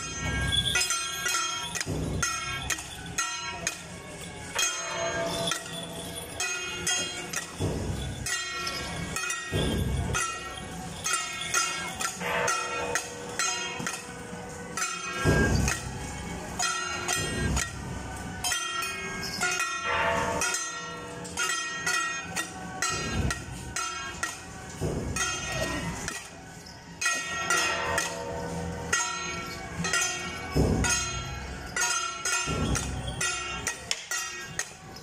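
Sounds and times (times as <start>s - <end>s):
clashing cymbals: 0.0s - 35.0s
drum beats: 6.4s - 12.4s, 14.8s - 18.6s, 21.4s - 26.3s, 29.9s - 34.8s.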